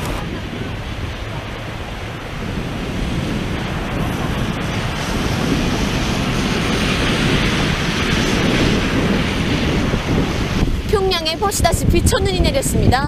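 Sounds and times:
cars passing: 0:00.0 - 0:13.0
wind on microphone: 0:00.0 - 0:13.0.

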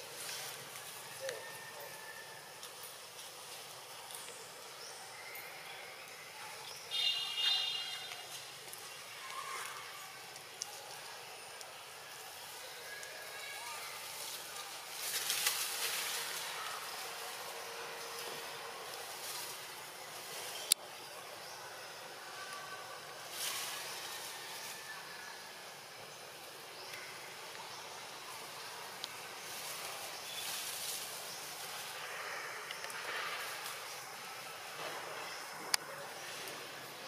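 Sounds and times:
rustling noise: 0:00.0 - 0:01.3, 0:13.9 - 0:20.8, 0:23.2 - 0:24.9, 0:29.2 - 0:35.6
steady high hiss: 0:00.0 - 0:37.0.

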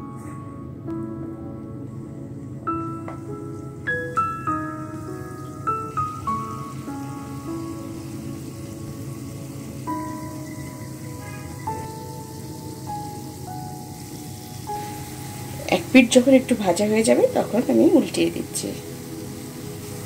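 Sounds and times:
soft slow background music: 0:00.0 - 0:20.0
food sizzling in hot oil: 0:02.6 - 0:20.0.

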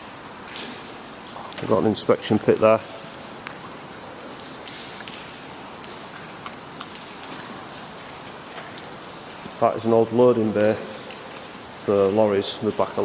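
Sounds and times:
light rain on wet concrete: 0:00.0 - 0:13.0.

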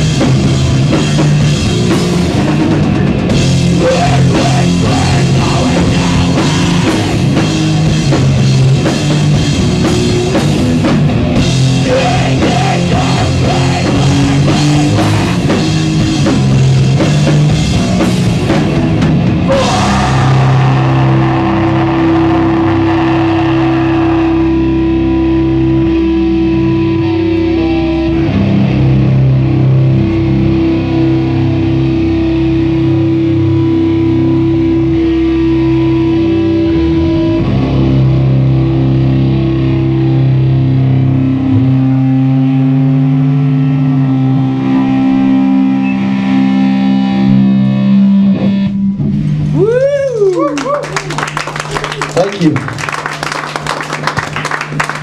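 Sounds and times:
distorted electric guitar droning chords: 0:00.0 - 0:49.8.

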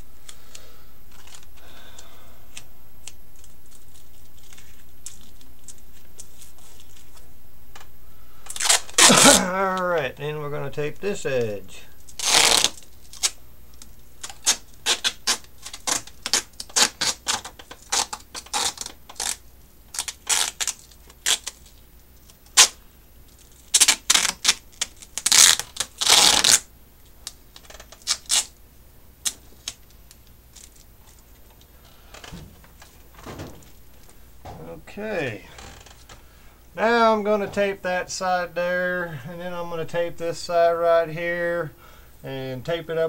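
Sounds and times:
tape crackling and clicking: 0:00.2 - 0:37.8
tape ripping off roll: 0:08.5 - 0:09.6, 0:12.1 - 0:13.4, 0:14.2 - 0:21.8, 0:22.5 - 0:22.8, 0:23.4 - 0:26.7, 0:27.5 - 0:28.5, 0:32.0 - 0:34.6.

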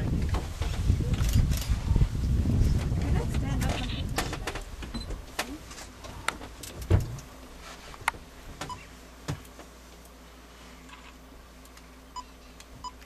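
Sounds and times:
low rumble: 0:00.0 - 0:05.4.

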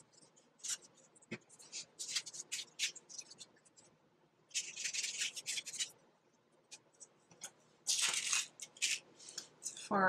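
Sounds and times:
paper and cardboard rustling: 0:07.9 - 0:09.9.

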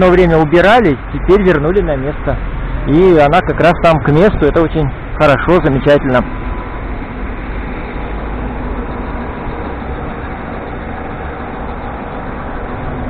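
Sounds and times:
distant traffic rumble: 0:00.0 - 0:13.0.

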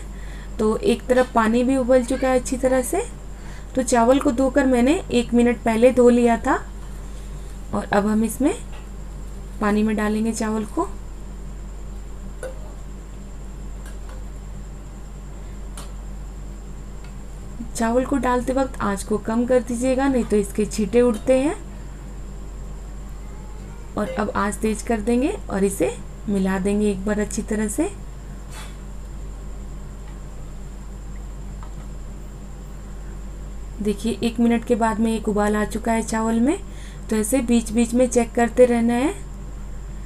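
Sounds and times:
boiling water hiss and hum: 0:00.0 - 0:40.0.

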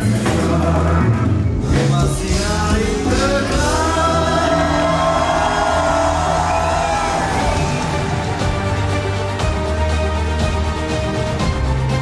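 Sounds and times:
live band music: 0:00.0 - 0:12.0
crowd shouting along: 0:03.8 - 0:09.2.

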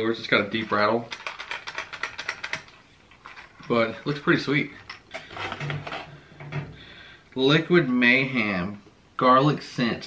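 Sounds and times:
plastic packaging clicks and rustles: 0:00.5 - 0:06.1.

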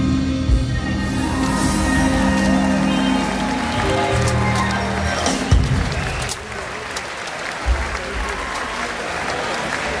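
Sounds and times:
audience applauding: 0:01.2 - 0:10.0.

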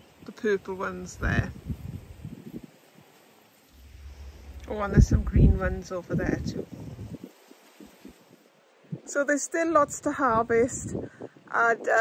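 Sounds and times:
foliage rustling: 0:00.0 - 0:08.9.

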